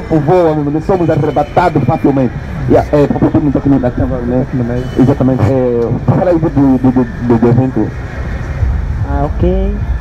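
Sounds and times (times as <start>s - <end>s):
man talking into microphone: 0.0s - 7.9s
low background rumble: 2.3s - 10.0s.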